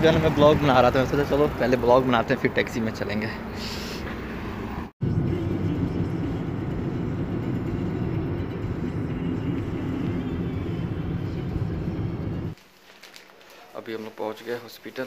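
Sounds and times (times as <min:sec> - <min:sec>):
car road and engine noise: 0:00.0 - 0:12.6.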